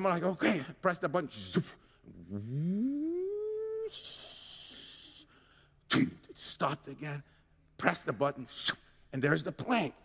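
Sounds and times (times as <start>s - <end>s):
man humming rising pitch: 2.2s - 4.8s.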